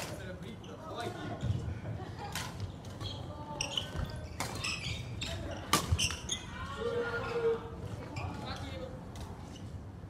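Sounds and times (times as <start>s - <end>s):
racket hitting shuttlecock: 5.7s - 6.2s.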